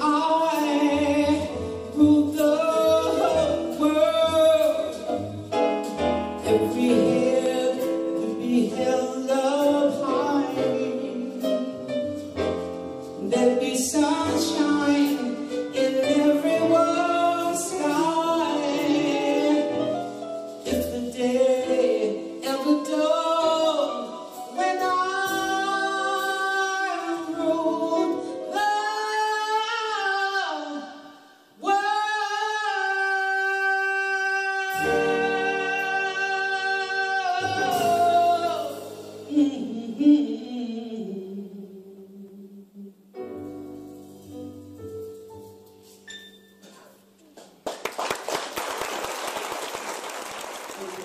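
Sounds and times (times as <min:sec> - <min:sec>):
live band playing a ballad: 0:00.0 - 0:42.1, 0:43.2 - 0:47.2
audience applauding: 0:47.4 - 0:51.0.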